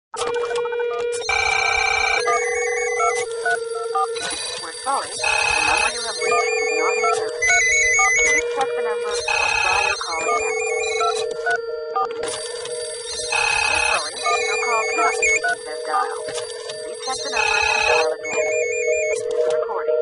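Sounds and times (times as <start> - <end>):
warbling ringtone trill: 1.2 - 8.4, 9.0 - 19.4.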